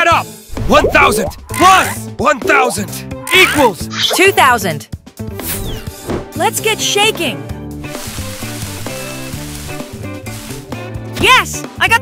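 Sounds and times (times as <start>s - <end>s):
cartoon background music: 0.0s - 12.0s
tree leaves rustling: 7.8s - 10.8s.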